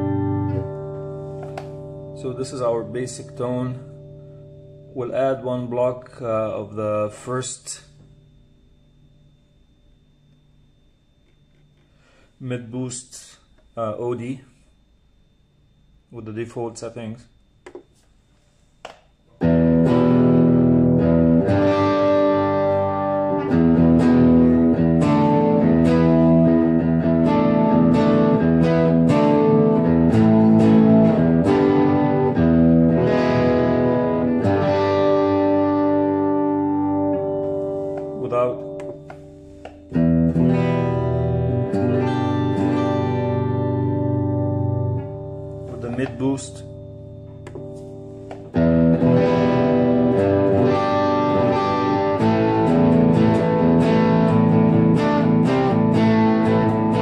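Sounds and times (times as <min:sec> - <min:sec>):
electric guitar overdrive chords: 0:00.0 - 0:07.0, 0:19.3 - 0:57.0.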